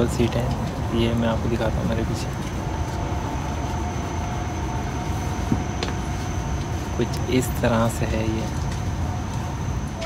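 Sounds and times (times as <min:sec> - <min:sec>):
faint steady whine: 0:00.0 - 0:10.0
train cabin rumble and hiss: 0:00.0 - 0:10.0.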